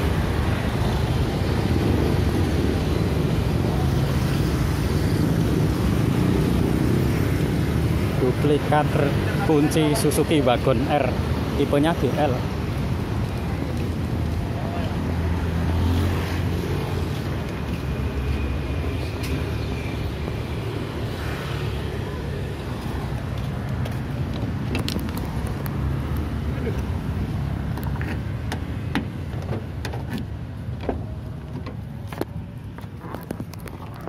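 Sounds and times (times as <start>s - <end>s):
traffic rumble: 0.0s - 34.0s
car door clicks and knocks: 28.0s - 31.9s.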